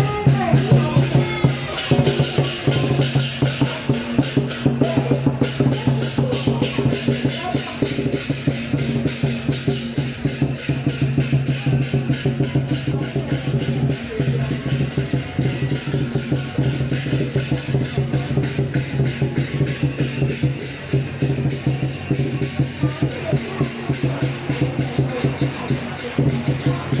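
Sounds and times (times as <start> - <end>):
cymbals crashing: 0.0 - 27.0
drum beating: 0.0 - 27.0.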